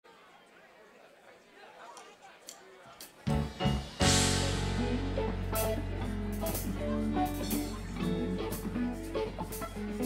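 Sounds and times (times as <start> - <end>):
audience chatter: 0.0 - 10.0.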